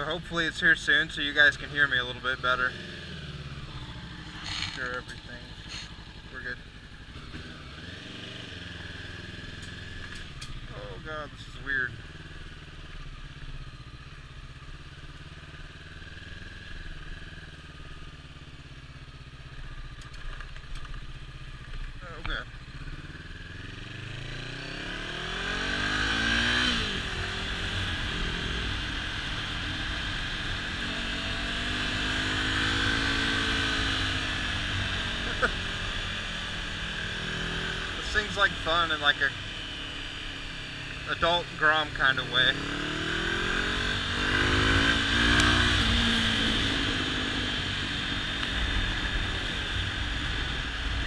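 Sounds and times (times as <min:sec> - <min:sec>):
motorcycle engine revving: 0:00.0 - 0:51.0
road noise: 0:00.0 - 0:51.0
rushing wind: 0:42.6 - 0:51.0.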